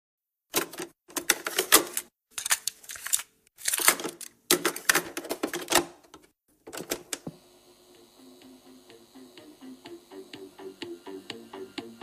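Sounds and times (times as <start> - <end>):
quiet music: 7.8 - 12.0.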